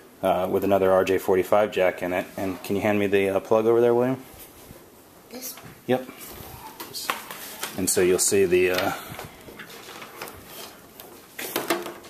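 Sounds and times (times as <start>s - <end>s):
cable handling clicks and rustles: 8.6s - 12.0s.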